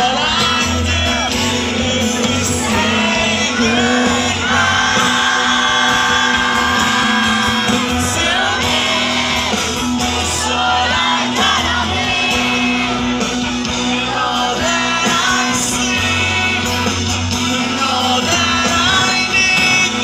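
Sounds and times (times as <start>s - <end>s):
acoustic guitar: 0.0s - 20.0s
crowd singing and shouting: 0.0s - 20.0s
drums: 0.0s - 20.0s
male singer: 0.0s - 20.0s.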